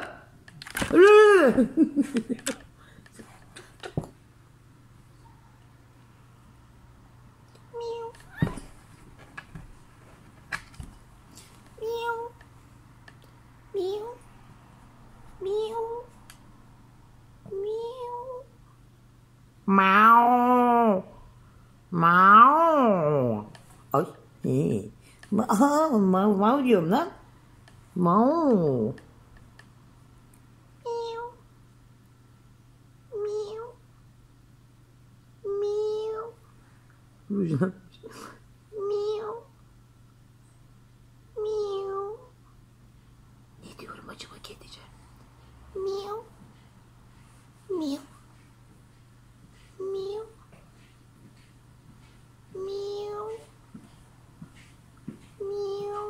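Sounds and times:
cat meowing: 30.8s - 31.4s
soft breathy whisper-like sounds: 43.6s - 45.6s.

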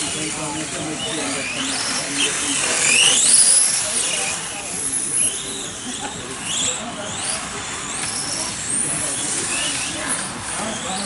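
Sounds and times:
model racing car whining: 0.0s - 11.0s.

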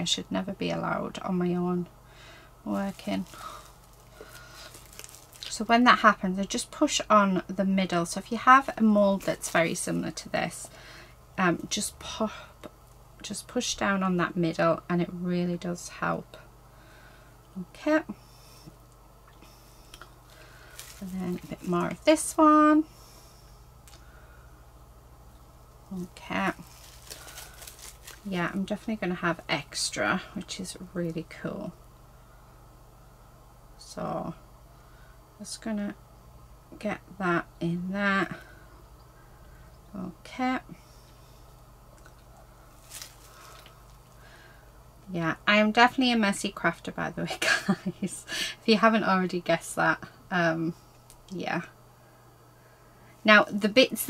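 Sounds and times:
low steady hum: 0.0s - 54.0s.

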